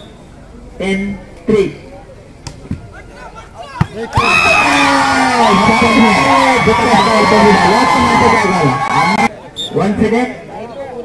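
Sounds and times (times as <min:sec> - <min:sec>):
faint crowd voices: 0:00.0 - 0:11.0.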